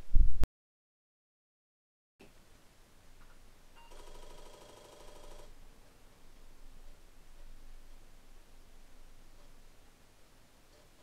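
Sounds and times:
floppy disk drive buzzing: 3.8 - 5.6.

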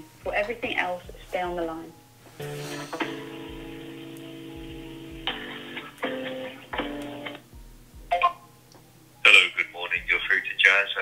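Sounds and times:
telephone hold music: 0.0 - 11.0.

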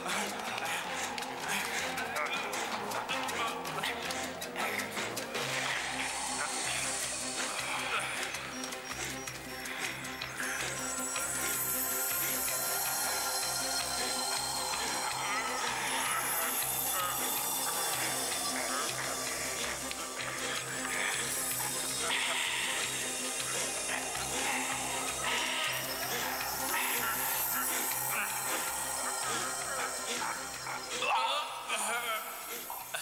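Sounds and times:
film soundtrack music: 0.0 - 33.0
voices: 0.0 - 33.0.

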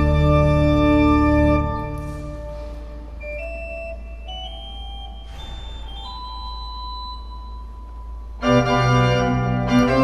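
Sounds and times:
pipe organ played softly: 0.0 - 10.0.

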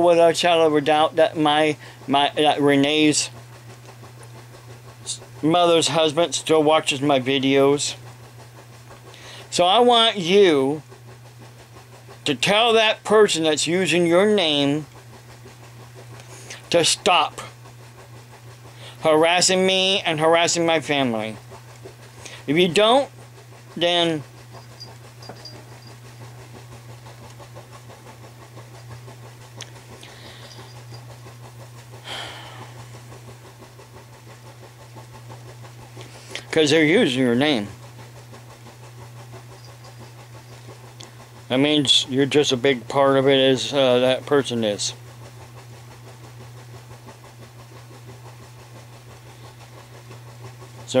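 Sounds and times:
low room hum: 0.0 - 51.0
man breathing softly: 9.2 - 9.5, 30.0 - 30.6
person speaking: 22.4 - 23.1, 23.8 - 24.3.

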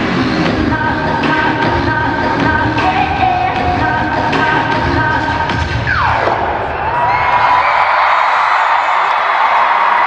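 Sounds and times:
dance track through speakers: 0.0 - 6.8
crowd cheering and screaming: 6.0 - 10.0.

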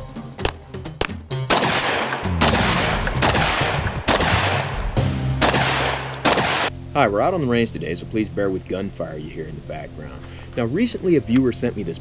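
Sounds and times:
music with sustained low notes: 0.0 - 12.0
gunshots with echo: 1.5 - 6.7.

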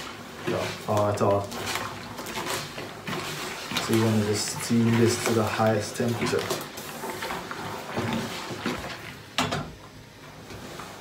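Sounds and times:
iron sliding over rustling fabric: 0.0 - 9.2, 10.2 - 11.0.

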